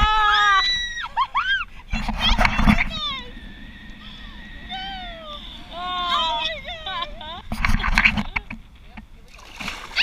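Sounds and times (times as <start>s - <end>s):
women shrieking and laughing: 0.0s - 8.5s
loud rush of noise: 1.7s - 8.6s.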